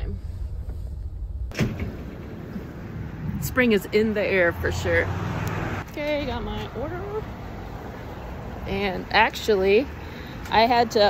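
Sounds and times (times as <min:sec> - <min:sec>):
sharp thump: 0:00.5 - 0:02.4.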